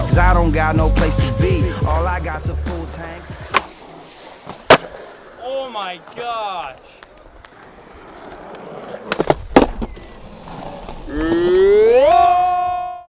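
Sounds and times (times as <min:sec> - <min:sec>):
skateboard wheels rolling on concrete: 0:00.0 - 0:13.0
skateboard clacking on ground: 0:04.4 - 0:11.3
person yelling: 0:11.2 - 0:13.0.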